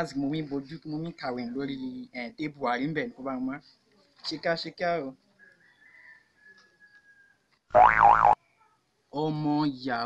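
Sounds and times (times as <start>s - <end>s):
cartoon boing sound effect: 7.8s - 8.4s.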